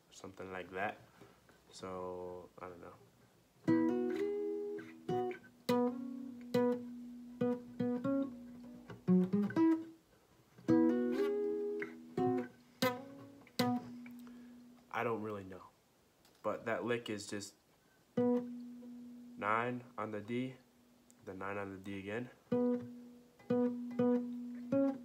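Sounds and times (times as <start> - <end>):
acoustic guitar single-note lick: 3.7 - 10.0, 10.7 - 14.8, 18.2 - 19.9, 22.5 - 25.0.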